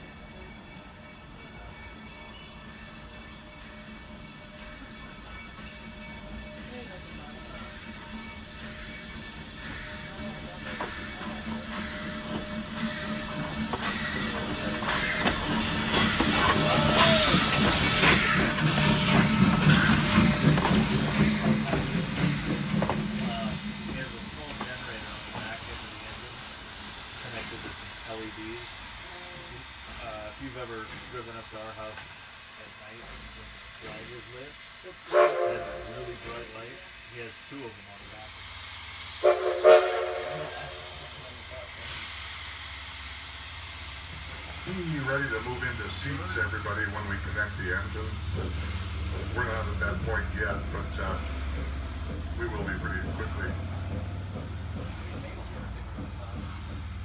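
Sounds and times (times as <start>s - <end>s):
steam locomotive passing: 0.0s - 57.0s
steam hissing: 0.3s - 57.0s
steam whistle blasts: 35.0s - 36.6s, 39.2s - 41.1s.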